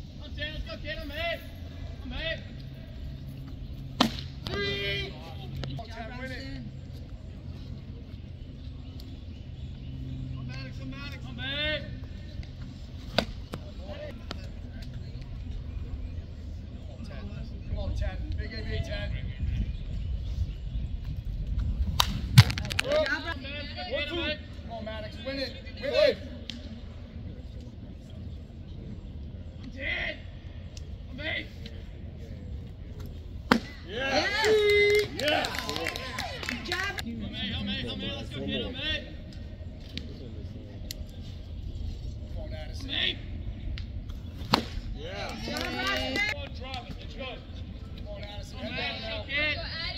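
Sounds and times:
distant voices: 0:00.0 - 0:49.9
baseball smacking into mitt: 0:22.0 - 0:23.0, 0:44.4 - 0:44.8.

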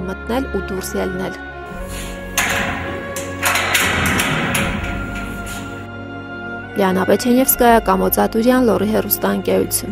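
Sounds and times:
background music: 0:00.0 - 0:09.9
metal door scraping open: 0:01.7 - 0:05.9
padlock clanking: 0:01.7 - 0:05.9.

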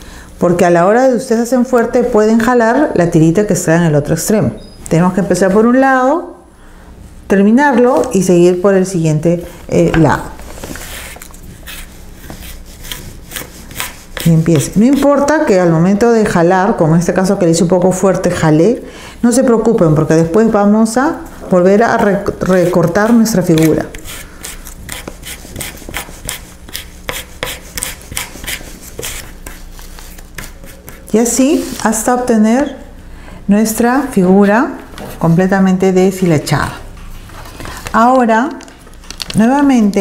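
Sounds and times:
comb scratching through cord: 0:10.4 - 0:15.2.

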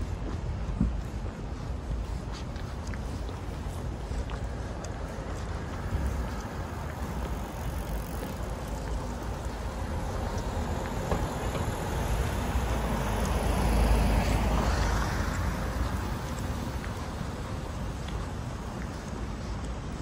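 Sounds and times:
low traffic rumble: 0:00.0 - 0:20.0.

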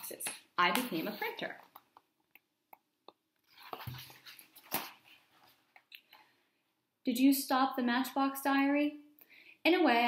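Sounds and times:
book pages rustling: 0:03.4 - 0:05.9.

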